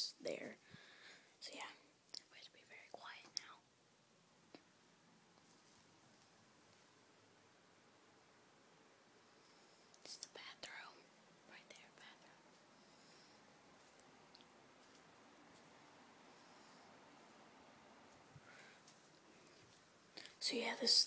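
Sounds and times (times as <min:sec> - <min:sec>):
faint whispering: 0:01.4 - 0:03.7, 0:09.4 - 0:14.0, 0:18.4 - 0:21.0.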